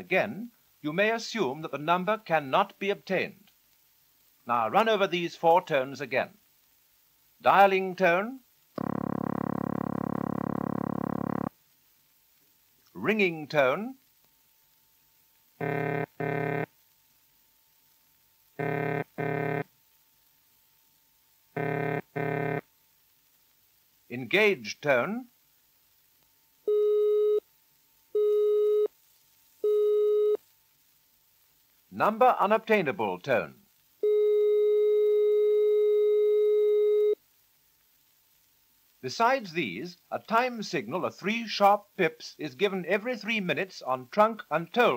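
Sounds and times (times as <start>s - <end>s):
low burring telephone ringing tone: 8.8s - 11.5s, 15.6s - 16.7s, 18.6s - 19.6s, 21.6s - 22.6s.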